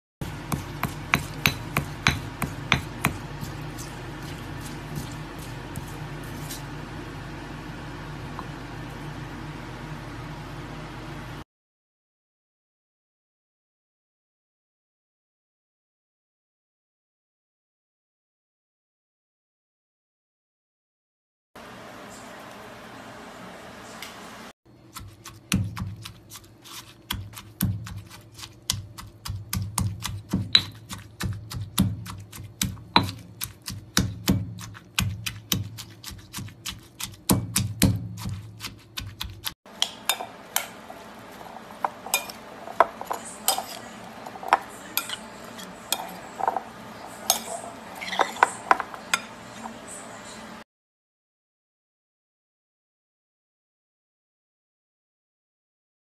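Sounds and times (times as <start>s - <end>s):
pestle knocking in stone mortar: 0.2s - 5.1s, 28.7s - 40.0s.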